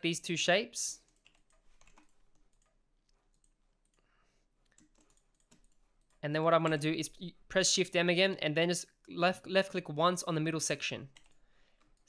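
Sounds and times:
computer mouse and keyboard clicks: 1.1s - 4.0s, 4.6s - 6.8s.

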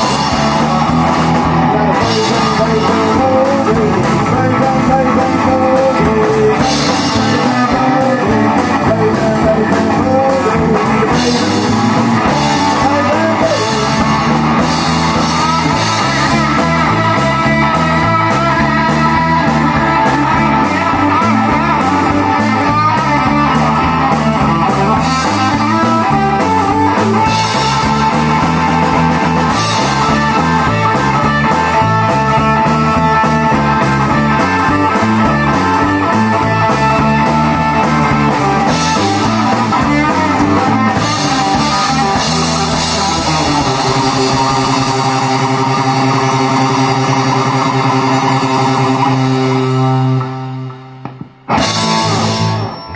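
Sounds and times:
drum kit playing: 0.0s - 52.9s
electric guitar boogie riff: 0.0s - 52.9s.

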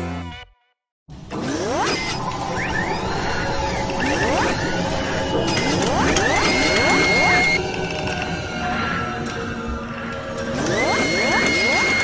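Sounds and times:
mechanical whirring and clattering: 1.1s - 12.0s.

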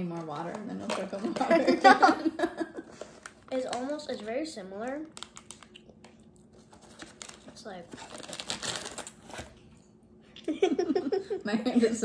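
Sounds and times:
foil bag crackling: 3.1s - 5.7s, 6.6s - 9.5s.

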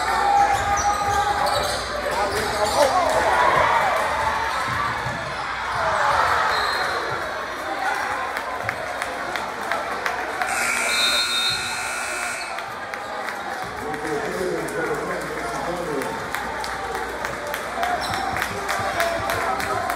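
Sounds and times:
crowd murmur: 0.0s - 19.9s
players and spectators voices: 0.0s - 19.9s
scoreboard horn tone: 10.5s - 12.7s.

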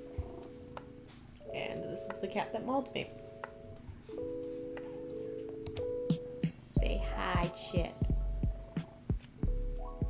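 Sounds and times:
held musical tones: 0.0s - 10.0s.

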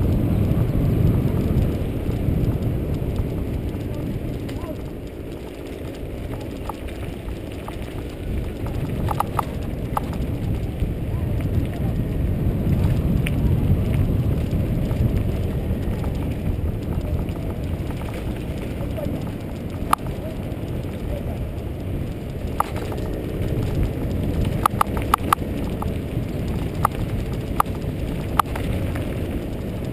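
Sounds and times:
bike tyres rolling on dirt: 0.0s - 29.9s
wind buffeting microphone: 0.0s - 29.9s.

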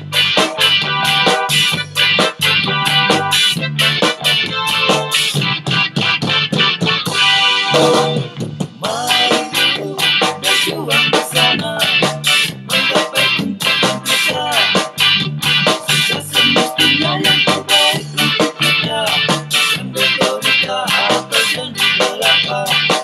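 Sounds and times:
guitar accompaniment: 0.0s - 23.0s
man singing: 8.8s - 15.1s, 15.7s - 23.0s.

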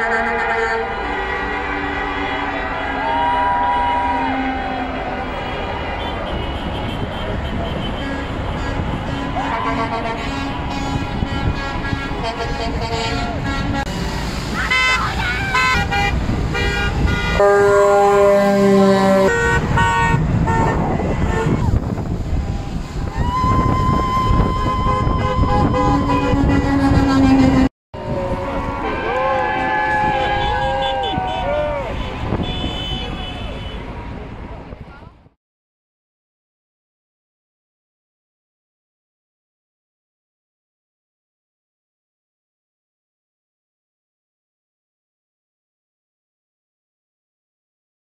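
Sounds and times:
truck air horn blast: 0.0s - 22.0s, 23.9s - 33.9s
vehicle horns tooting: 0.0s - 22.1s, 23.6s - 34.0s
traffic rumble: 0.0s - 35.4s
crowd voices calling out: 20.6s - 32.3s.

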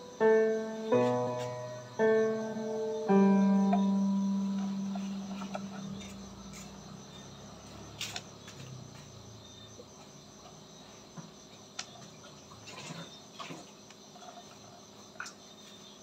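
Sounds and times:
high chirring: 0.0s - 6.7s
background music low note: 0.0s - 7.5s.

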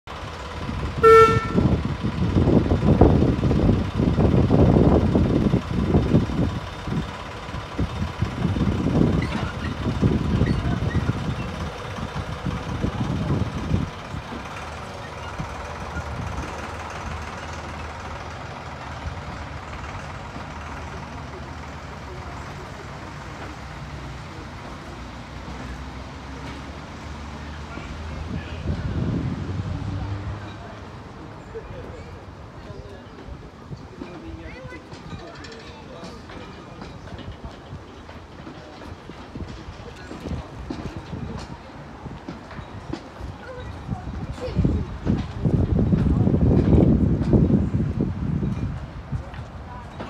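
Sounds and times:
carriages rolling past: 0.1s - 50.0s
locomotive chugging: 0.1s - 50.0s
miniature train rumbling: 0.1s - 50.0s
locomotive whistle toot: 1.0s - 1.7s.

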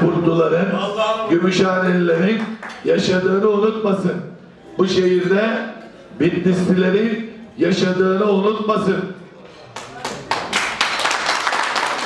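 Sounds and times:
audience applause: 10.0s - 12.0s.

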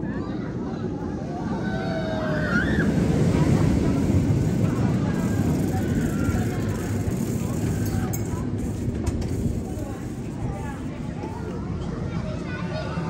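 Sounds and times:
roller coaster rumbling on track: 0.0s - 13.0s
faint riders' voices: 2.3s - 13.0s.

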